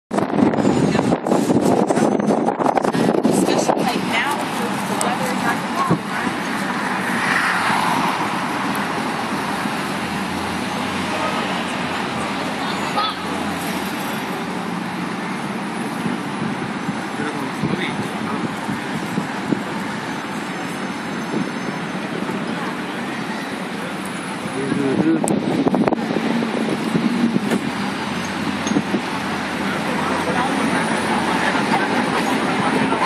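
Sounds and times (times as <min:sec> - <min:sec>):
traffic noise: 0:00.1 - 0:33.0
vehicle engine hum: 0:00.1 - 0:33.0
indistinct voices: 0:00.6 - 0:33.0.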